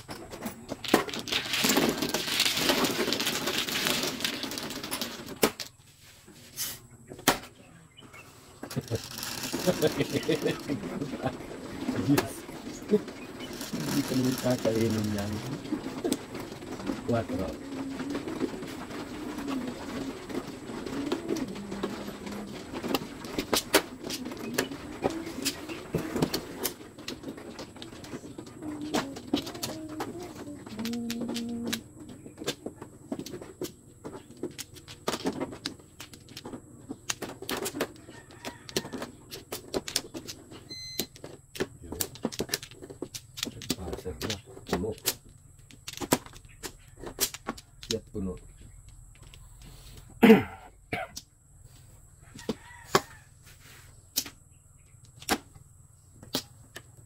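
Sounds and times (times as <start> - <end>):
table shuffling machine: 0.0 - 5.7, 8.6 - 31.8
plastic tiles clattering: 0.0 - 5.8, 8.6 - 49.5.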